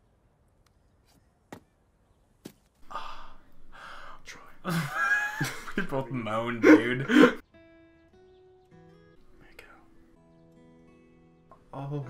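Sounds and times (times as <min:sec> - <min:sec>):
long breathy sighs: 0:02.8 - 0:04.7.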